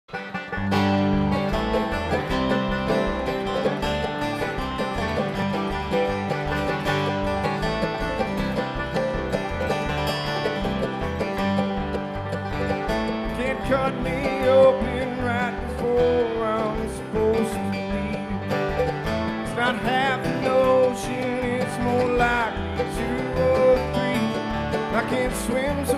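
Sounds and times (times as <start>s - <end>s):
bluegrass band playing: 0.0s - 25.9s.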